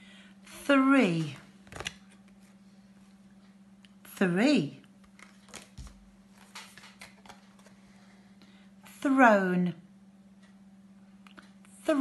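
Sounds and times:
faint steady hum: 0.0 - 12.0
paper cards rustling and tapping: 1.2 - 2.6, 5.0 - 7.8.

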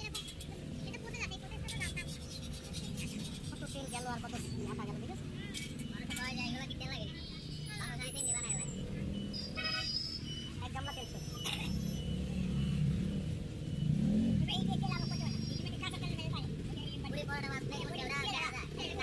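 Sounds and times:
vehicle engine hum: 0.0 - 19.0.

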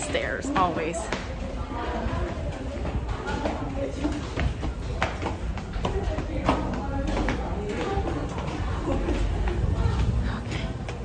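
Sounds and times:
footsteps on concrete stairs: 0.0 - 11.0
indistinct voices: 0.0 - 11.0
steady low rumble: 1.1 - 11.0.

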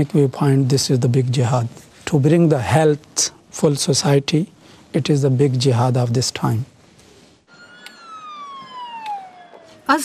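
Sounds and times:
siren sliding down in pitch: 7.5 - 10.0.

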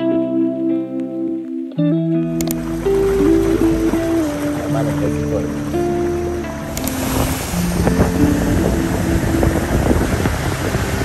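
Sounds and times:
motorboat engine: 2.4 - 11.0
water rushing past hull: 2.5 - 11.0
wind noise on microphone: 2.6 - 11.0.

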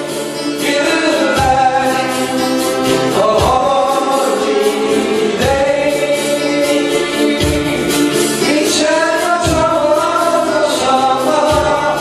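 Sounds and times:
live band playing: 0.0 - 12.0
low accent beat: 0.0 - 12.0
person singing: 0.0 - 12.0.

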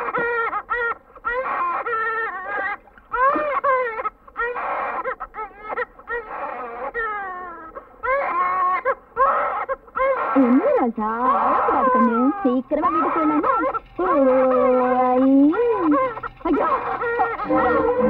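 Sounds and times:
infant crying: 0.0 - 18.0.

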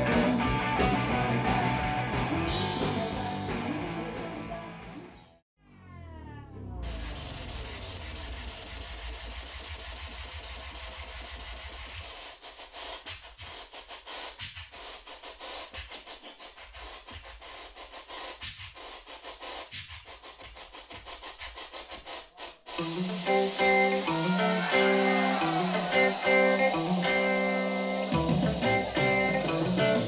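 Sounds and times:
bass-heavy beat: 0.0 - 5.2, 22.8 - 27.4, 28.0 - 30.0
vinyl record scratching: 6.7 - 30.0.

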